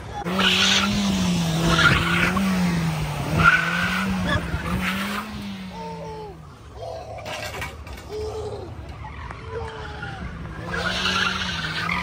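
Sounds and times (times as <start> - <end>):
tyres squealing on asphalt: 0.0 - 2.5, 3.3 - 12.0
car engine at high revs: 0.2 - 6.4.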